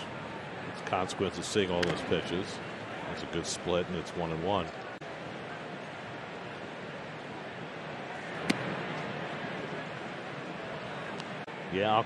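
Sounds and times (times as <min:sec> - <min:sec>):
ballpark crowd noise: 0:00.0 - 0:12.0
ball smacking into mitt: 0:08.4 - 0:08.7.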